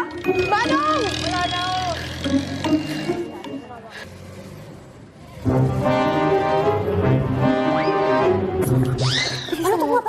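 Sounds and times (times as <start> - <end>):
background music: 0.0 - 4.8, 5.4 - 10.0.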